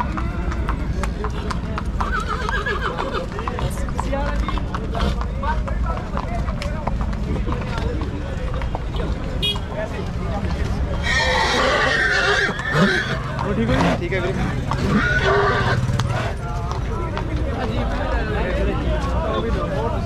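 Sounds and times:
people talking: 0.0 - 20.0
horse neighing: 1.3 - 3.8, 10.9 - 16.4.

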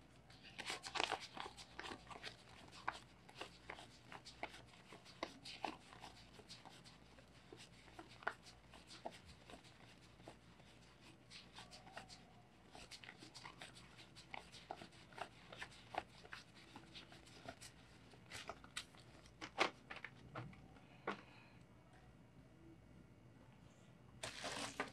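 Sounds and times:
banknotes rustling and crinkling: 0.0 - 21.4, 24.2 - 24.9.

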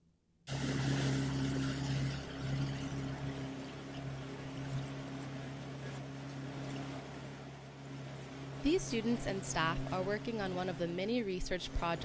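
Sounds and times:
motorboat engine droning: 0.5 - 12.0
water rushing over hull: 0.5 - 12.0.

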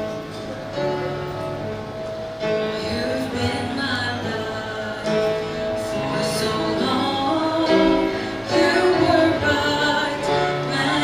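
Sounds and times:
musical accompaniment: 0.0 - 11.0
woman singing into a microphone: 2.6 - 11.0.

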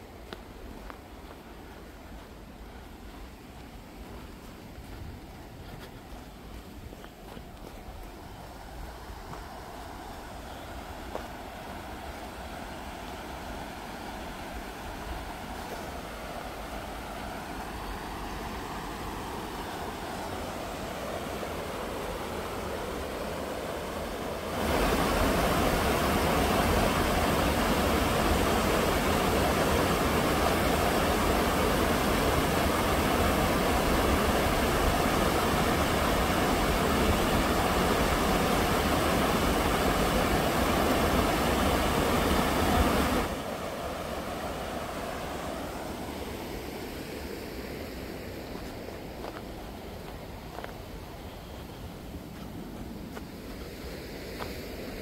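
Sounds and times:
river water rushing over rocks: 0.0 - 55.0.

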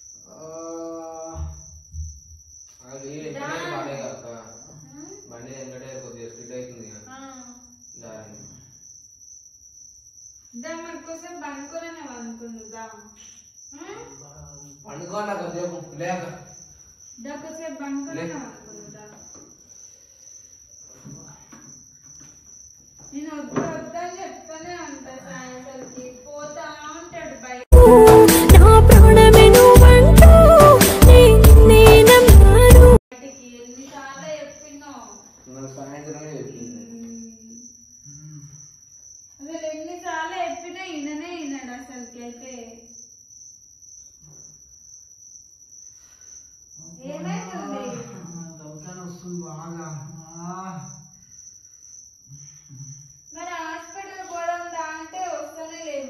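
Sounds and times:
high-pitched cricket-like trill: 0.0 - 56.0
high-pitched trill: 27.7 - 33.0.

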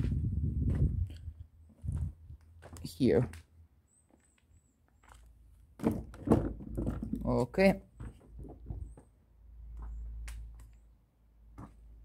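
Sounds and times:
footsteps on wooden steps: 0.0 - 3.5, 5.0 - 10.8, 11.5 - 11.9.

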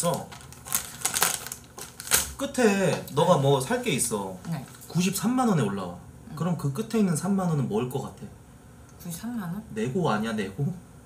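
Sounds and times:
wrapping crackling: 0.0 - 3.3.

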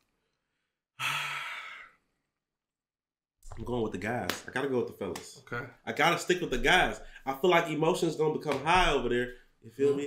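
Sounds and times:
man sighing: 1.0 - 2.0.

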